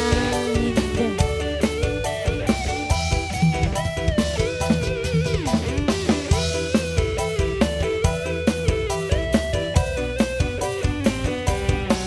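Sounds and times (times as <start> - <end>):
bass: 0.0 - 12.0
drum kit beat: 0.0 - 12.0
electric guitar bending notes: 0.0 - 12.0.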